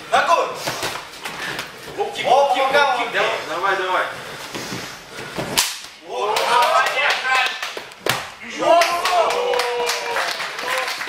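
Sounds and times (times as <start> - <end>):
men shouting: 6.0 - 7.4, 8.4 - 10.8.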